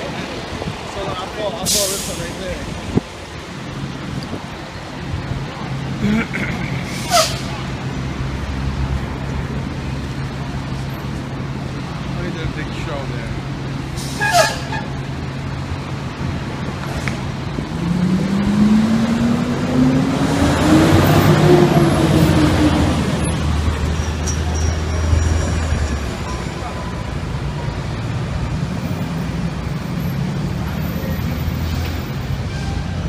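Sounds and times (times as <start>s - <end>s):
fire truck diesel engine accelerating: 0.0s - 33.0s.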